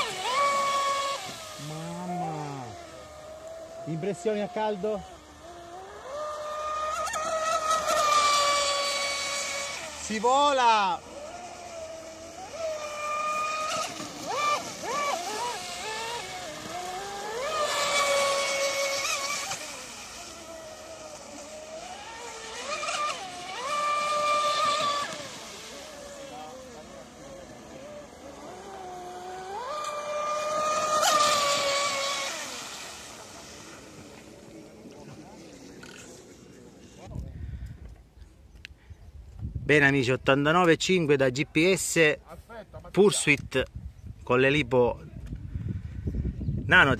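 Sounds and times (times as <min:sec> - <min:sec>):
electric motor whining: 0:00.0 - 0:37.2.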